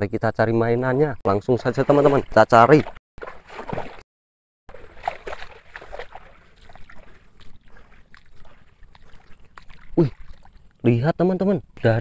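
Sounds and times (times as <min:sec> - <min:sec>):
mud squelching: 0:01.3 - 0:04.0, 0:04.7 - 0:11.1
footsteps crunching on wet gravel: 0:04.7 - 0:10.5.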